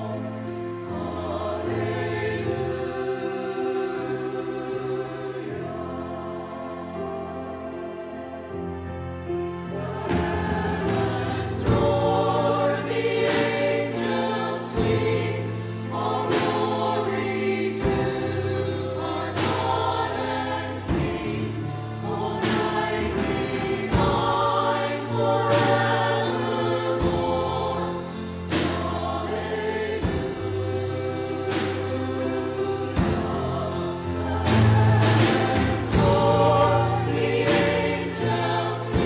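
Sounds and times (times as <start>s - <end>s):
church choir singing: 0.0s - 39.0s
piano and keyboard accompaniment: 0.0s - 39.0s.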